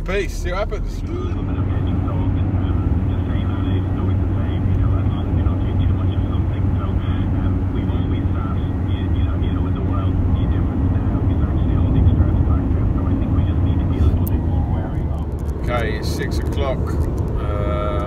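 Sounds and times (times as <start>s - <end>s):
car interior road drone: 0.0s - 18.0s.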